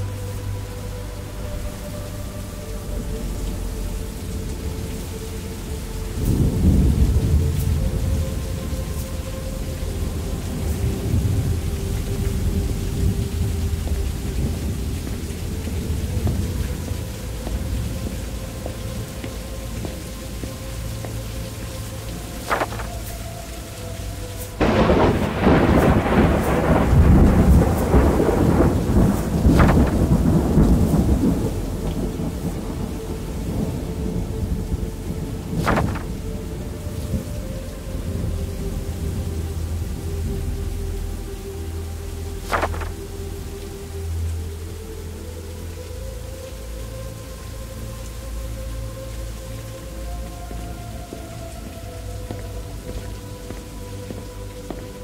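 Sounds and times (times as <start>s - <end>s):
steady rain: 0.0s - 55.0s
low thunder rumbling: 2.7s - 9.0s, 9.6s - 20.1s, 24.6s - 41.1s
loud thunderclap: 24.6s - 32.3s, 35.5s - 36.2s.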